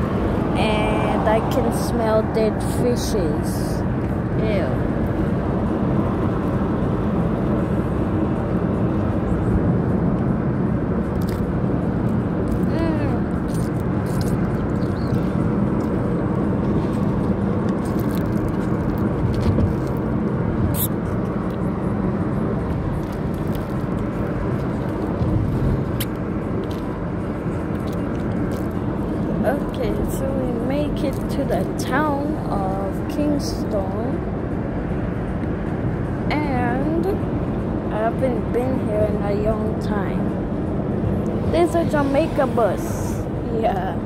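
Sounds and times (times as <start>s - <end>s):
car road and engine noise: 0.0s - 44.0s.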